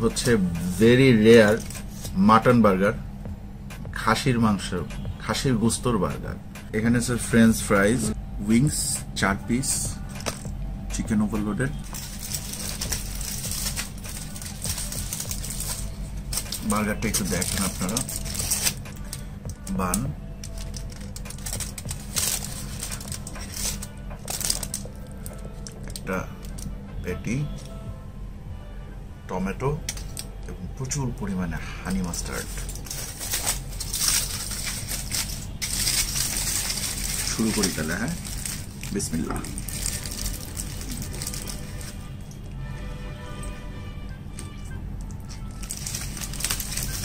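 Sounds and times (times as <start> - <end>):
aluminium foil crinkling: 0.2 - 2.0, 11.8 - 26.7, 32.0 - 42.4, 45.0 - 47.0.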